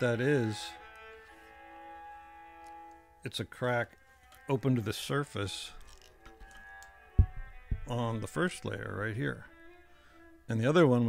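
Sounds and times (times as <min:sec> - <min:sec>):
handling knocks: 0:07.2 - 0:08.1.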